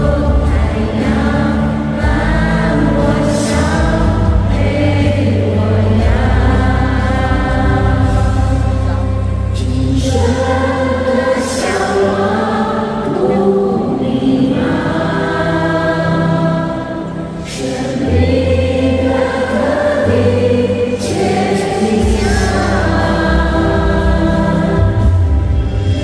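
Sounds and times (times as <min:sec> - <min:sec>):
women singing into microphones: 0:00.0 - 0:09.2, 0:09.8 - 0:26.0
amplified instrumental accompaniment: 0:00.0 - 0:26.0.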